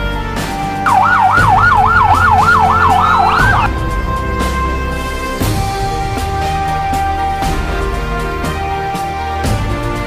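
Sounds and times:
background music: 0.0s - 10.0s
police siren yelping: 0.9s - 3.7s.

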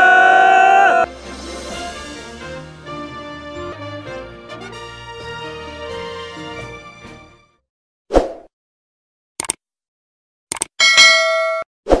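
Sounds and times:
bright bell ding: 10.8s - 11.7s.

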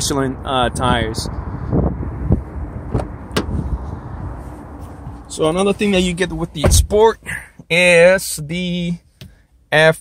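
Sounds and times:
low rumble: 0.0s - 7.3s.

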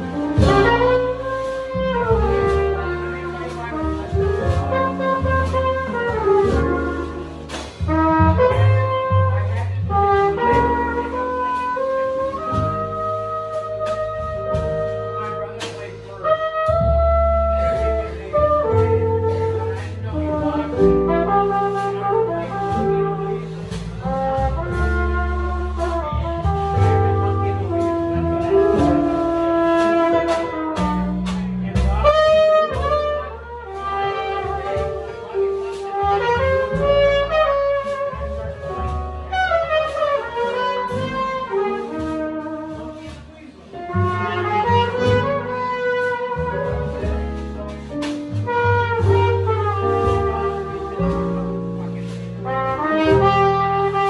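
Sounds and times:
trumpet melody with vibrato: 0.0s - 7.3s, 7.9s - 35.0s, 35.8s - 43.1s, 43.9s - 47.0s, 48.4s - 51.0s, 52.4s - 54.0s
jazz group playing: 0.0s - 54.0s.

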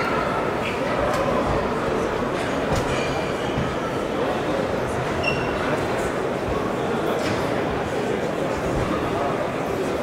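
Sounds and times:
crowd murmur in echoing hall: 0.0s - 10.0s.

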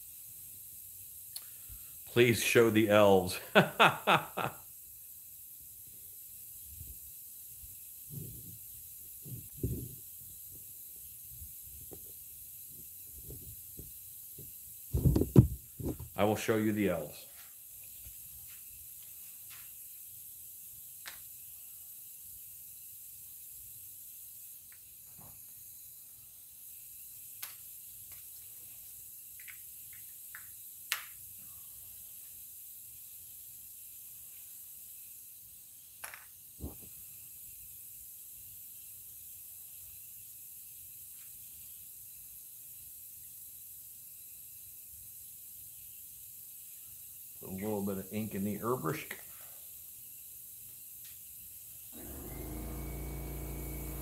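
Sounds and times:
airbrush hiss: 0.0s - 54.0s
small clicks and knocks: 29.4s - 31.2s, 36.0s - 36.8s.

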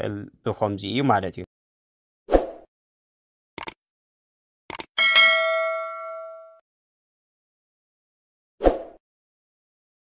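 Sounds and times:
bell ding: 5.0s - 6.6s.

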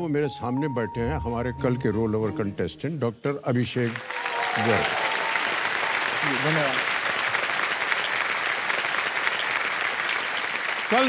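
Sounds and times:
audience applauding: 3.7s - 11.0s.

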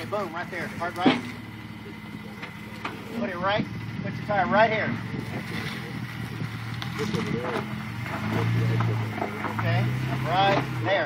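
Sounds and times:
car engine running at low revs: 0.0s - 11.0s.

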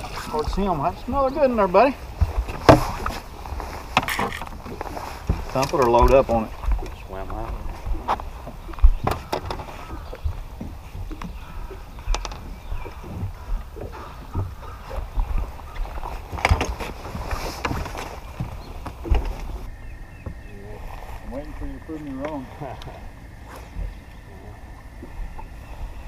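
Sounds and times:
knocks and clunks on boat deck: 0.0s - 26.0s
wind rumbling on microphone: 0.0s - 26.0s.

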